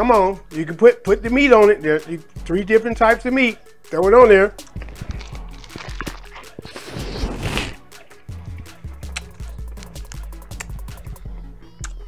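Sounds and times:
background music with bass line: 0.0 - 12.0
loud crunch: 4.6 - 10.7
person chewing lettuce: 4.6 - 11.2.

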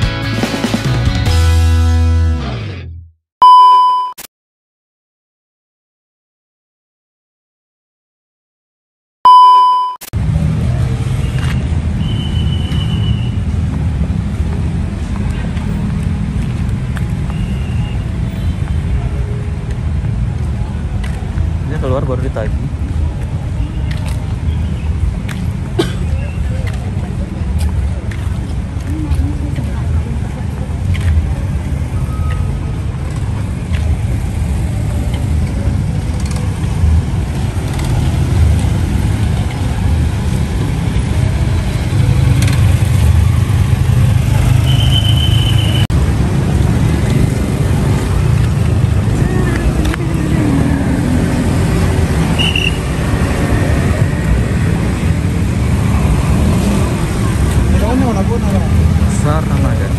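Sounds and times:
brief high beeps: 3.4 - 4.3, 9.3 - 10.1
car engines passing: 10.2 - 59.9
steady low traffic rumble: 10.2 - 59.9.

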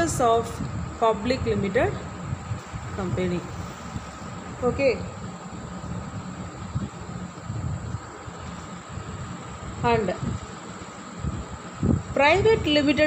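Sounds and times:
low background rumble: 0.0 - 13.0.

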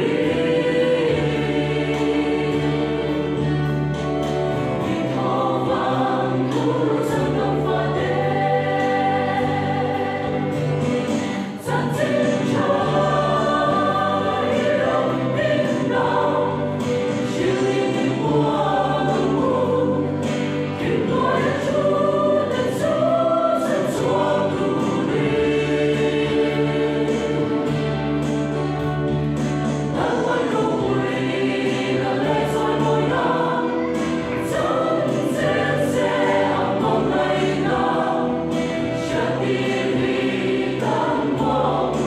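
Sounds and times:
mixed choir singing: 0.0 - 42.0.

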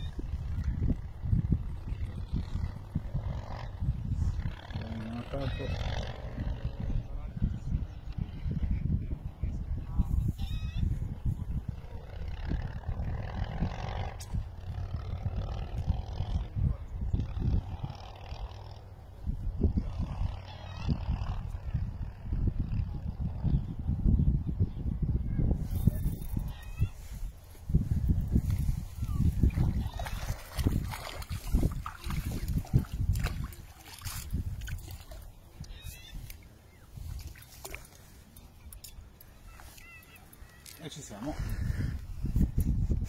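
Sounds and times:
wind rumble on microphone: 0.0 - 43.0
fish splashing in water: 29.1 - 36.5, 37.1 - 38.7.

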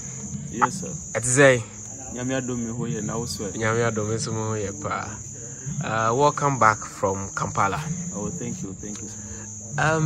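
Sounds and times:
crickets trilling: 0.0 - 10.0
people talking: 0.5 - 10.0.

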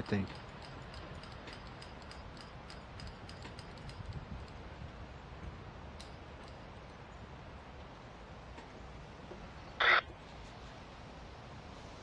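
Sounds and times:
rail car wheels ticking: 0.0 - 7.0
low rumble of train: 0.0 - 12.0.

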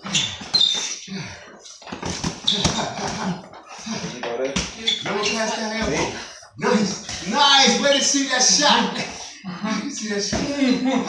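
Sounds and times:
sneakers squeaking on floor: 0.0 - 1.1, 1.7 - 3.2, 4.6 - 6.2.

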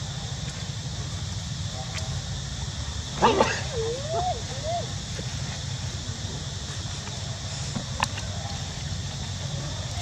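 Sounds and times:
infant monkey crying: 3.2 - 4.9.

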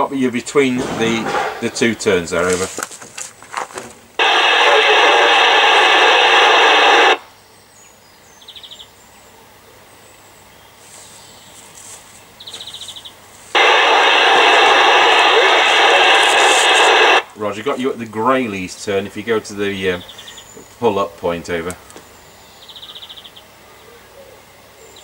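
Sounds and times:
noisy radio transmission with static: 0.0 - 7.3, 13.6 - 21.7.

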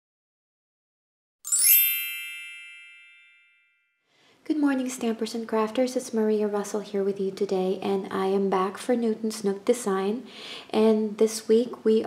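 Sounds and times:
bright ringing chime: 1.5 - 4.0.

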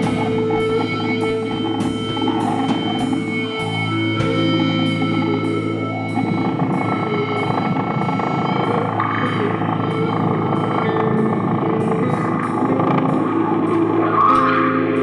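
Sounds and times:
electric guitar noise and feedback: 0.0 - 15.0
sustained tones: 0.0 - 15.0.

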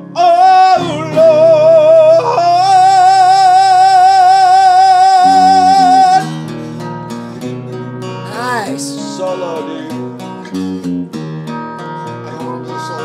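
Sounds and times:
person singing: 0.0 - 6.6, 8.2 - 10.4, 11.9 - 13.0
acoustic and electric guitars: 0.0 - 13.0.

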